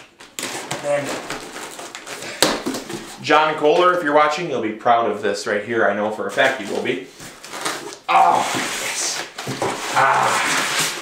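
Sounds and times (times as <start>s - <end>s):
cardboard and tape scraping: 0.0s - 3.2s, 6.3s - 11.0s.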